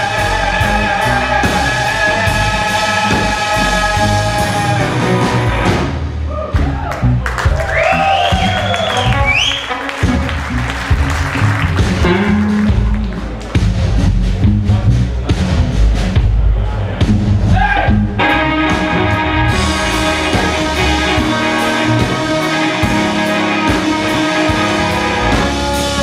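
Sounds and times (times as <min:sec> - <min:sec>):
blues band playing: 0:00.0 - 0:26.0
electric guitar lead line: 0:08.4 - 0:13.4, 0:17.9 - 0:26.0.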